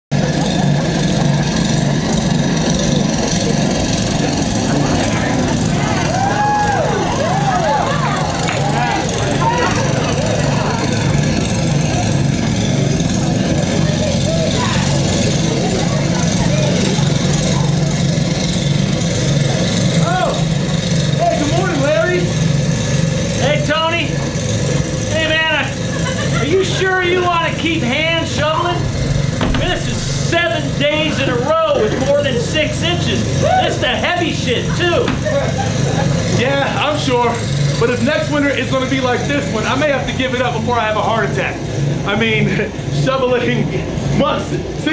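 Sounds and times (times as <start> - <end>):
snowblower engine running: 0.1 - 44.9
voices: 0.2 - 22.4, 23.2 - 44.9.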